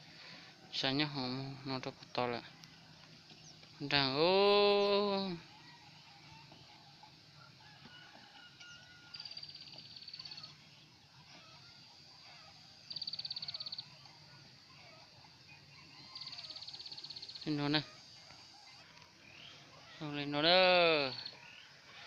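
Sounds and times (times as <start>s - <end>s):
distant animal calls: 0.0s - 22.0s.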